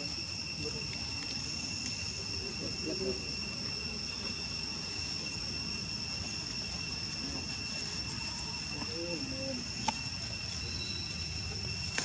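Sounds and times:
forest insects droning: 0:00.0 - 0:12.0.

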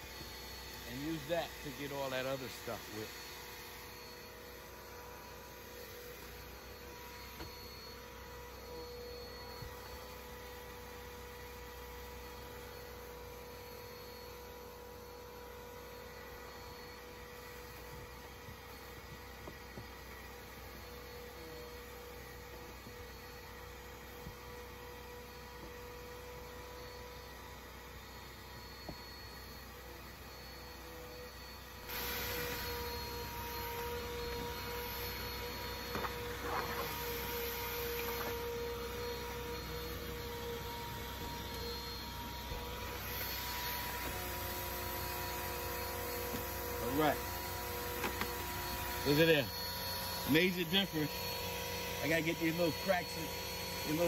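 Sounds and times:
vacuum cleaner running: 0:00.0 - 0:54.0.

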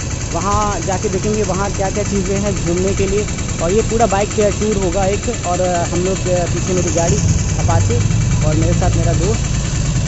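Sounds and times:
motorcycle engine idling: 0:00.0 - 0:10.0
man talking: 0:00.3 - 0:09.5.

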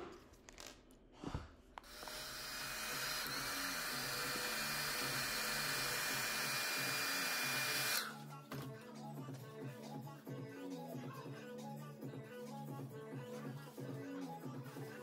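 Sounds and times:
hair dryer blowing: 0:01.8 - 0:08.2.

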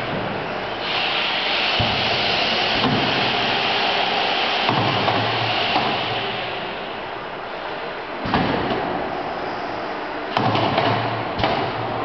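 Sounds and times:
printing press air hiss: 0:00.1 - 0:12.0
machine parts knocking and clunking: 0:10.3 - 0:12.0.

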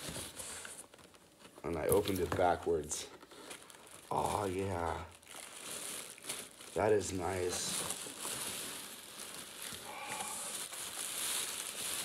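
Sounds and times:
plastic wrapping crinkling: 0:00.0 - 0:12.0.

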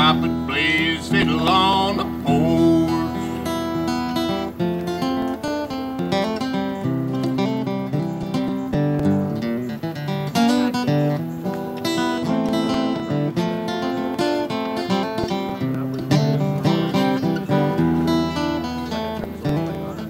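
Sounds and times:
acoustic guitar picked melody: 0:00.0 - 0:20.0
acoustic guitar strummed chords: 0:00.0 - 0:20.0.

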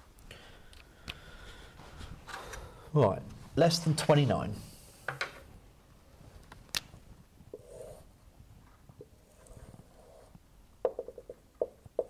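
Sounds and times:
marker on whiteboard: 0:07.5 - 0:08.1.

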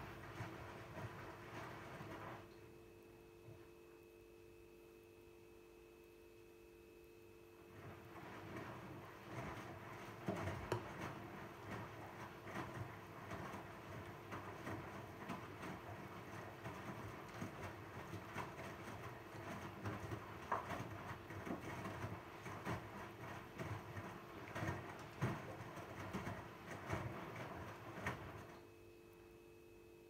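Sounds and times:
faint steady hum: 0:00.0 - 0:19.8, 0:28.4 - 0:30.0
water sloshing: 0:07.8 - 0:28.5.

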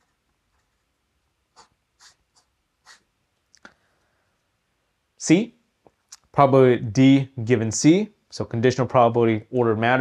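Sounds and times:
pen scratching on paper: 0:01.5 - 0:03.1.

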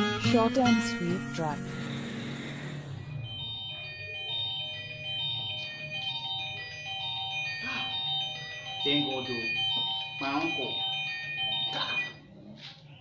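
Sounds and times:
mobile phone ringtone: 0:00.0 - 0:13.0.

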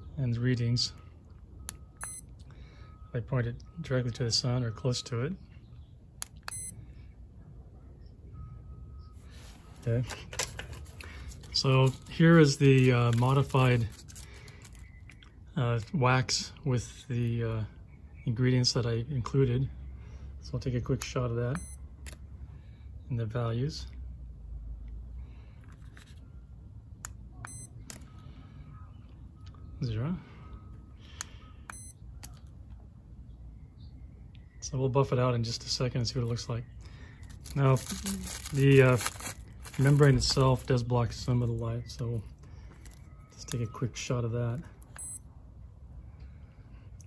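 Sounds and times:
low steady rumble: 0:00.0 - 0:47.0
high-pitched electronic beep: 0:01.6 - 0:03.9, 0:06.5 - 0:06.8, 0:21.6 - 0:21.9, 0:27.4 - 0:28.7, 0:30.4 - 0:32.0, 0:44.9 - 0:45.3
meter click: 0:01.7 - 0:02.2, 0:06.2 - 0:06.7, 0:27.4 - 0:28.0, 0:31.2 - 0:32.4, 0:44.9 - 0:45.2
short high electronic beep: 0:02.0 - 0:02.3, 0:06.5 - 0:06.8, 0:27.5 - 0:27.7, 0:45.0 - 0:45.2
button clicks: 0:27.4 - 0:28.0.

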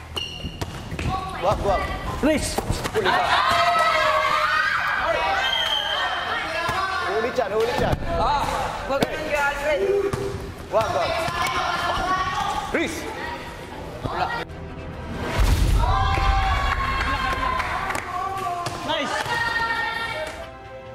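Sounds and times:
people shouting: 0:03.0 - 0:07.2, 0:11.0 - 0:13.5, 0:15.8 - 0:20.2.

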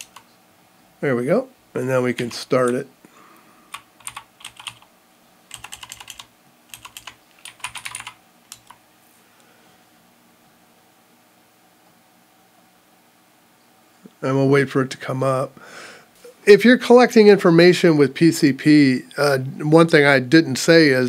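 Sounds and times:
computer keyboard typing: 0:00.0 - 0:00.2, 0:03.7 - 0:04.9, 0:05.5 - 0:08.8.

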